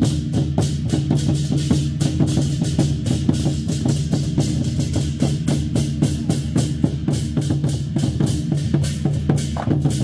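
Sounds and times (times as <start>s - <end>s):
hand cymbals clashing: 0.0s - 10.0s
war drums booming: 0.0s - 10.0s.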